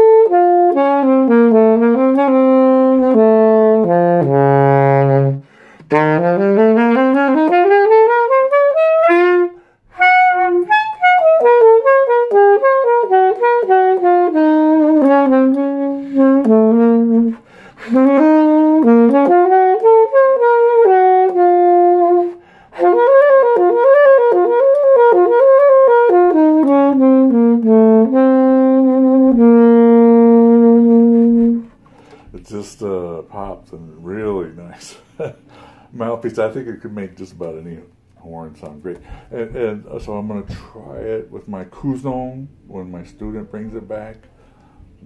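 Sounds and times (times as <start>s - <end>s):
alto saxophone melody: 0.0s - 32.4s, 38.9s - 45.0s.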